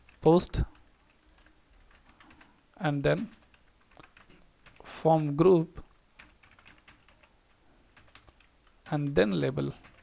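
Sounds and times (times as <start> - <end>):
keyboard typing: 0.1 - 4.8, 6.2 - 10.0.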